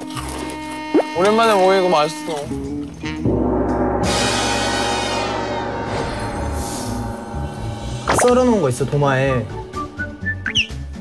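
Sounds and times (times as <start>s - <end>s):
gong ringing: 3.3s - 8.1s
high shimmer: 4.6s - 9.3s.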